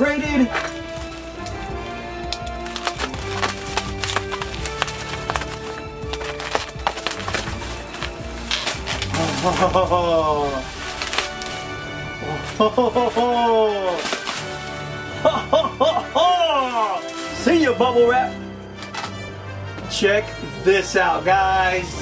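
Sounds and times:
plastic wrap crackling and tearing: 0:00.0 - 0:17.8
background music with held notes: 0:00.0 - 0:22.0.

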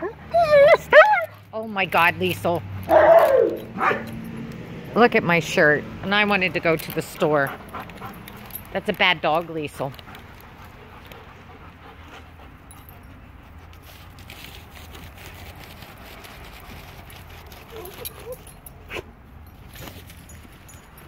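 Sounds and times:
dog whimper: 0:00.0 - 0:01.4, 0:17.6 - 0:19.1
steady outdoor rumble: 0:00.0 - 0:21.0.

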